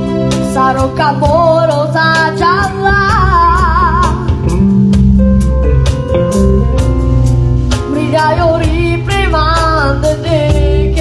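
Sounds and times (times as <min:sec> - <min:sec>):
live band playing: 0:00.0 - 0:11.0
boy singing into a microphone: 0:00.5 - 0:04.2, 0:07.9 - 0:11.0.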